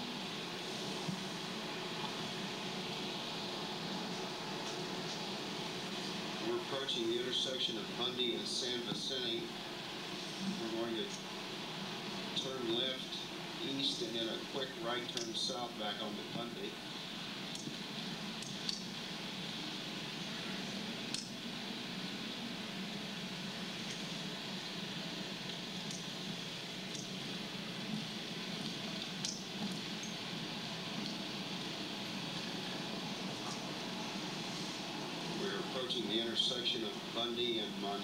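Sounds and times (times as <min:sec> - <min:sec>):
faint clicks: 0:17.5 - 0:17.8, 0:18.4 - 0:18.9, 0:21.1 - 0:21.4, 0:25.5 - 0:26.1.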